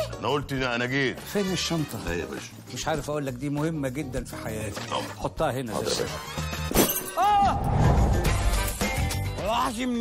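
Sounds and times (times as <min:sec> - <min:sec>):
loud trailer music: 0:07.5 - 0:09.4.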